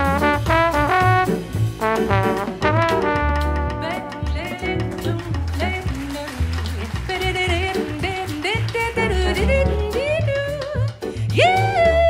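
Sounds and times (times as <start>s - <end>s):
jazz combo playing swing: 0.0s - 12.0s.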